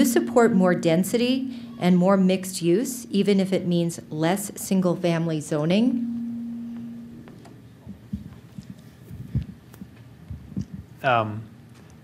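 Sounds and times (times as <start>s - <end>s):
microphone handling thumps: 6.6s - 11.0s.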